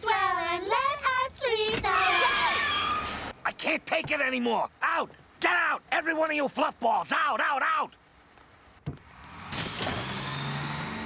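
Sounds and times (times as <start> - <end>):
bus air brake hiss: 2.4 - 3.4
bus engine droning: 9.0 - 11.0.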